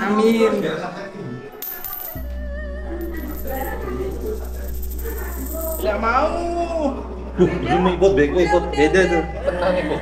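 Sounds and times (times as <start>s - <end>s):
background music: 0.0s - 10.0s
low steady hum: 1.6s - 10.0s
coin spinning on tile floor: 3.0s - 5.8s.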